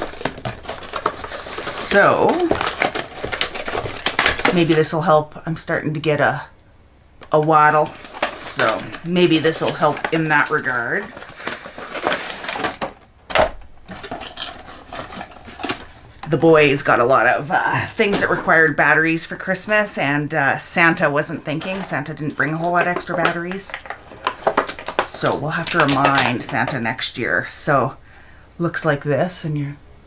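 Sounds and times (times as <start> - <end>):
packaging rustling: 0.0 - 5.1, 7.2 - 19.6, 20.8 - 27.1.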